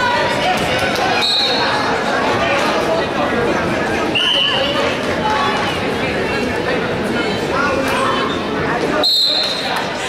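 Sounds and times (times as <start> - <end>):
crowd voices and shouts: 0.0 - 10.0
referee's whistle blast: 9.0 - 9.6.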